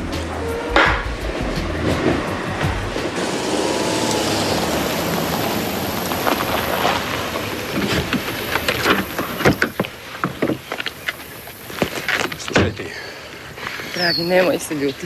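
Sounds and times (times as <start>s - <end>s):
background music: 0.0s - 5.2s
car driving up: 0.0s - 10.0s.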